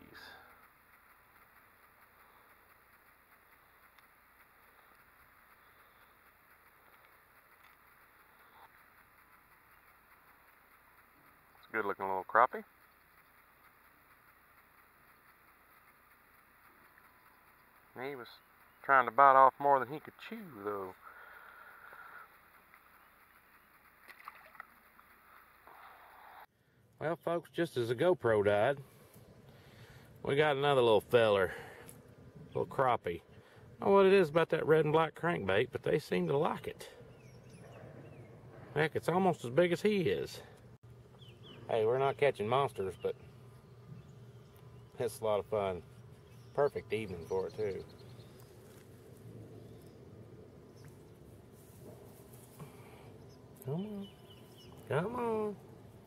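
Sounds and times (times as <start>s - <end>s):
faint clicks: 0.0s - 27.1s, 28.5s - 41.6s.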